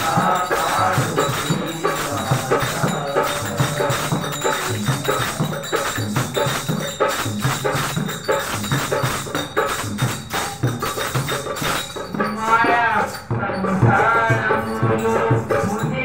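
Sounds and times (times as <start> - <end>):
drum beats: 0.0 - 16.0
jingling hand percussion: 0.0 - 16.0.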